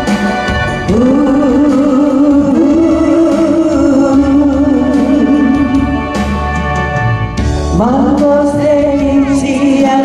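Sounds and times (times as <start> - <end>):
instrumental accompaniment: 0.0 - 10.0
singer holding long note: 0.9 - 7.1.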